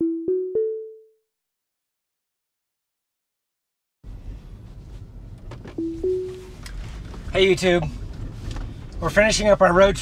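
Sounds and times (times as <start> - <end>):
two-note electronic chime: 5.8 - 6.6.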